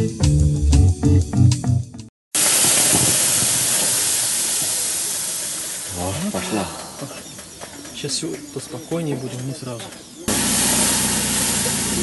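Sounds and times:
steam hissing on hot stones: 2.4 - 7.6, 10.3 - 12.0.

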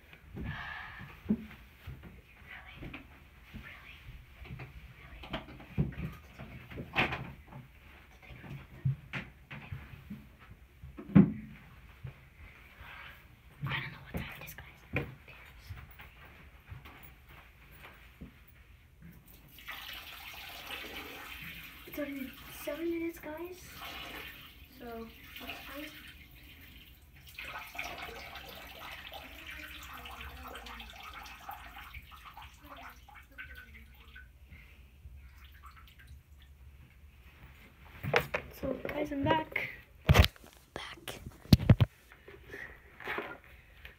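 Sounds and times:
water running from a tap: 19.3 - 34.3.

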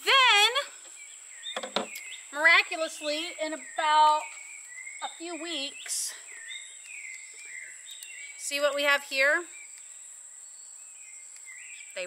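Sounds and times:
bird whistling calls: 0.9 - 12.0.

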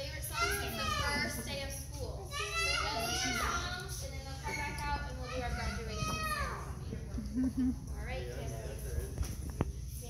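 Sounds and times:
young children's voices: 0.0 - 1.6, 2.2 - 6.8
steady low hum: 0.0 - 10.0.

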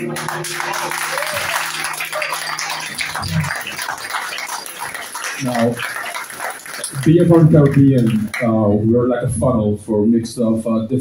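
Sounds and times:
audience applauding and cheering: 0.0 - 8.8
short calls from audience: 0.3 - 7.1.

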